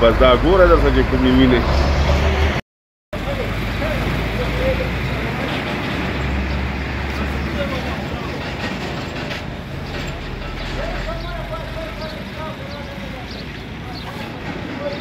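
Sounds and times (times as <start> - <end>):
vehicle engine humming: 0.0 - 2.6, 3.2 - 15.0
road noise: 0.0 - 15.0.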